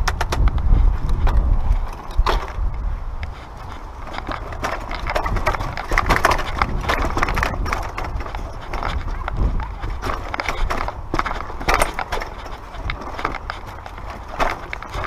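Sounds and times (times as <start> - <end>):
bike rattling over rock: 0.0 - 15.0.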